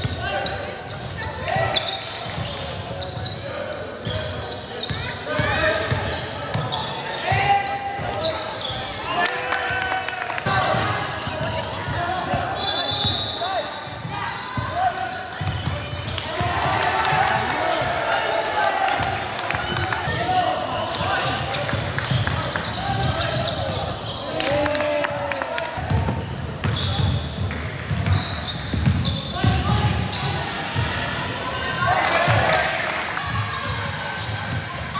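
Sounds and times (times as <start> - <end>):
basketball bouncing on court: 10.5 - 13.2, 13.9 - 17.9, 25.8 - 31.0.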